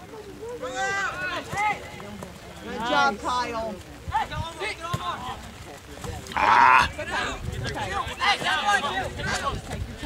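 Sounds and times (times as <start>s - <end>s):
voices shouting: 6.3s - 9.7s.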